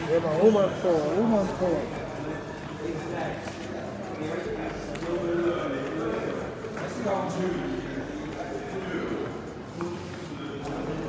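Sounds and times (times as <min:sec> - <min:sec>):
indistinct people talking: 0:00.0 - 0:11.0.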